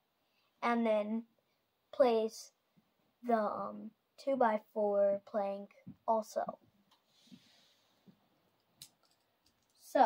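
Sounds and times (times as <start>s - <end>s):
plastic pieces clicking: 8.8s - 9.8s.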